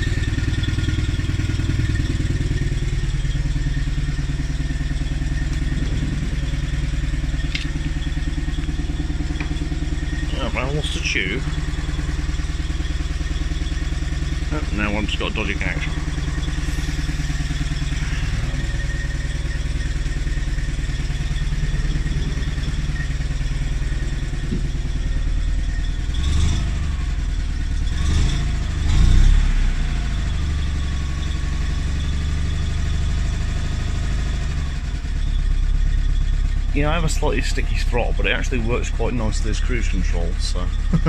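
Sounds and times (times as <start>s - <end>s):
engine running at fast idle: 0.0s - 41.0s.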